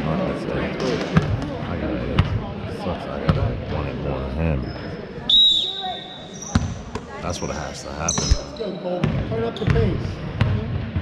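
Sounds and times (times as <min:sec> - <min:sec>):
voices echoing in gym: 0:00.0 - 0:11.0.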